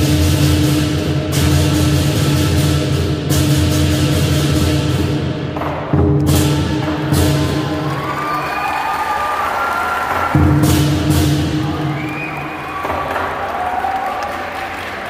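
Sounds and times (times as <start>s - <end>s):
drum cymbals and gong strikes: 0.0s - 7.8s, 10.2s - 12.0s
crowd cheering and applause: 6.2s - 15.0s.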